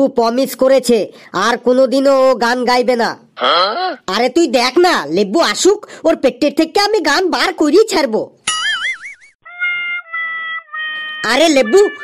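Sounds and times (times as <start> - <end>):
held electronic note: 9.4 - 12.0
high warbling whistle-like tone: 9.4 - 12.0.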